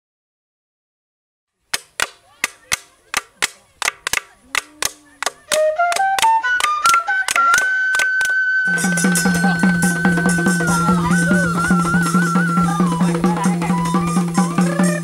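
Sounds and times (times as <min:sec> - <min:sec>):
sharp percussive clicks: 0:01.7 - 0:09.3
folk ensemble playing: 0:01.8 - 0:15.0
wind instrument melody: 0:04.4 - 0:15.0
drums: 0:08.7 - 0:15.0.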